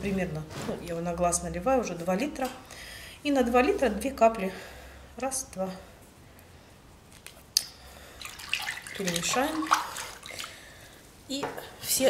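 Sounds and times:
hand splashing water in tub: 8.2 - 10.8.

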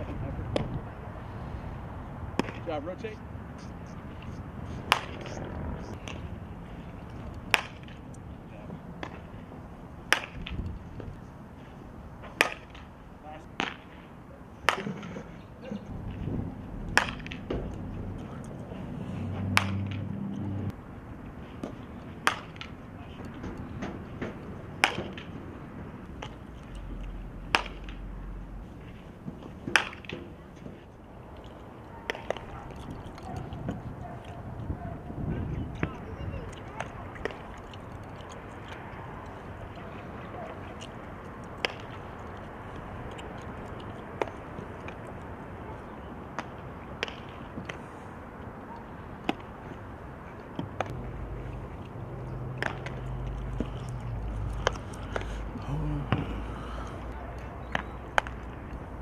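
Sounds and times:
bat hitting softballs: 2.3 - 2.7, 4.0 - 11.2, 12.2 - 18.2, 19.3 - 20.4, 21.5 - 28.1, 28.8 - 30.8, 31.5 - 33.9, 35.8 - 37.6, 39.9 - 42.2, 42.8 - 45.4, 46.3 - 47.8, 49.2 - 49.6, 50.4 - 56.3, 57.0 - 59.0.

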